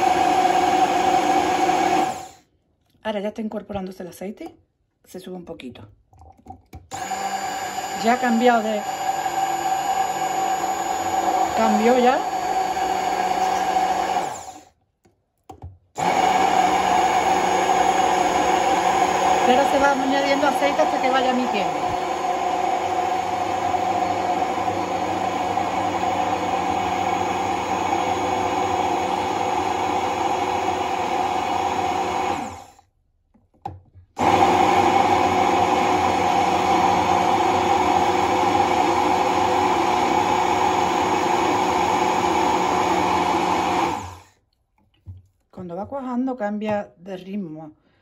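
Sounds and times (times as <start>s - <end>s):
immersion blender running: 0.0s - 2.4s, 6.9s - 14.7s, 16.0s - 32.8s, 34.2s - 44.3s.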